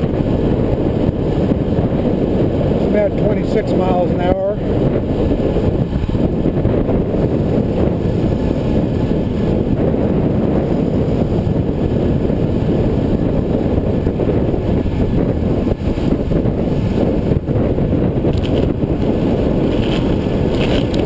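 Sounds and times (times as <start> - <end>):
tyre noise on pavement: 0.0 - 21.0
wind buffeting microphone: 0.0 - 21.0.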